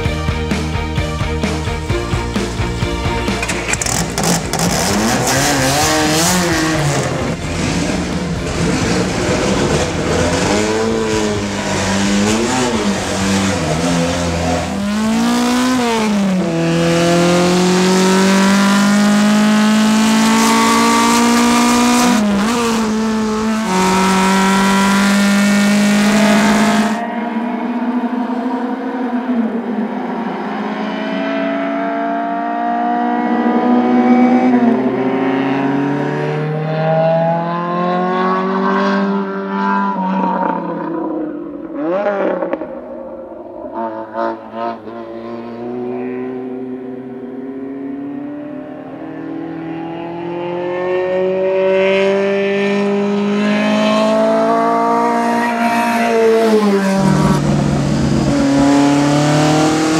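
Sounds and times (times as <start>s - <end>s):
car engine revving hard: 3.4s - 27.0s, 30.7s - 42.7s, 43.5s - 59.9s.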